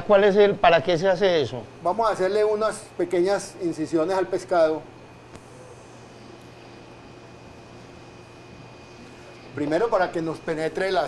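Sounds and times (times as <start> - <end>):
ventilation and machinery hum: 0.0 - 11.0.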